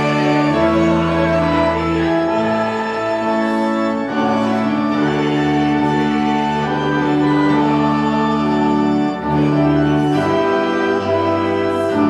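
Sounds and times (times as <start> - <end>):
organ playing sustained chords: 0.0 - 12.0.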